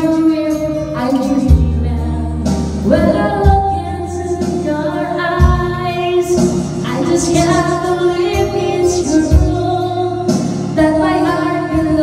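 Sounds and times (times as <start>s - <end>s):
backing track with bass notes: 0.0s - 12.0s
woman singing into microphone: 0.0s - 12.0s.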